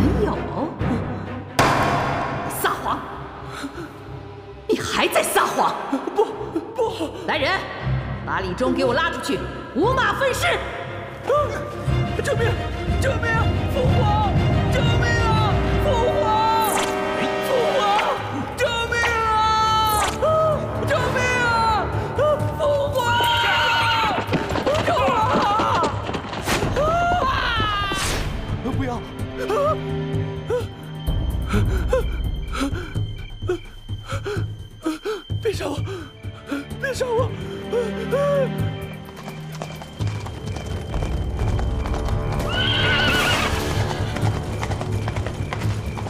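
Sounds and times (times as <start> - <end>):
dramatic background music: 0.0 - 46.0
horses galloping: 23.6 - 28.0, 39.0 - 46.0
horse whinnying: 42.4 - 44.1.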